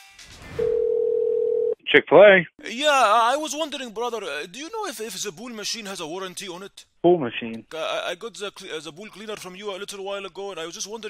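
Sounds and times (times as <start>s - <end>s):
telephone ringback tone: 0.6s - 1.8s.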